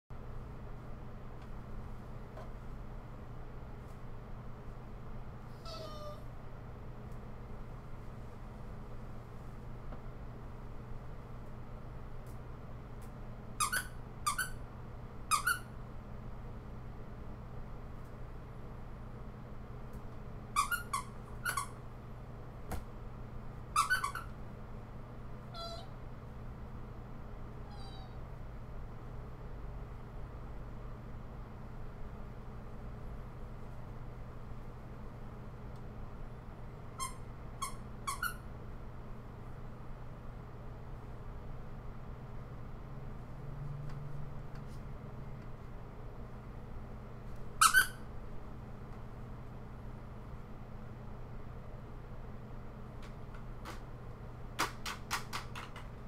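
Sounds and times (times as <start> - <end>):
faint steady hum: 0.2 - 56.0
squeaky toy squeaks: 13.6 - 14.6, 15.3 - 15.7, 20.6 - 21.8, 23.8 - 24.3, 25.5 - 25.9, 27.7 - 28.2, 37.0 - 38.4, 47.6 - 48.1.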